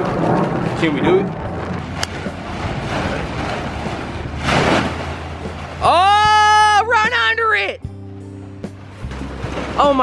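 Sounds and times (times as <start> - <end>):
plastic tarp rustling: 0.0 - 6.2, 9.0 - 10.0.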